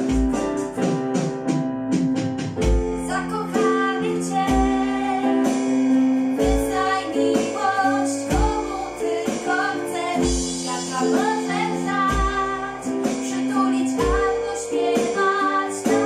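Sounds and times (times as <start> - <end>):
digital piano: 0.0 - 16.0
drums: 0.0 - 16.0
women singing pop song: 2.8 - 16.0.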